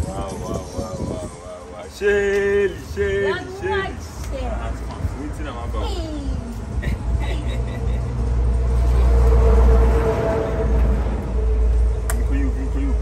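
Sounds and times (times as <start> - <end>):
vehicle engine driving past: 7.6 - 13.0.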